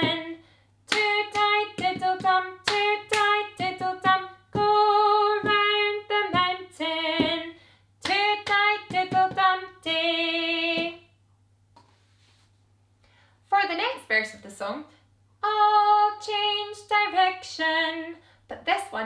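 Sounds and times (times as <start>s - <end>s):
woman singing unaccompanied: 0.0s - 11.1s, 15.4s - 19.0s.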